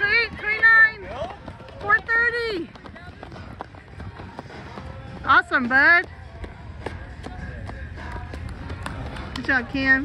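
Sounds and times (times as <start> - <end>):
faint crowd voices: 0.0 - 10.0
light running footfalls: 0.0 - 10.0.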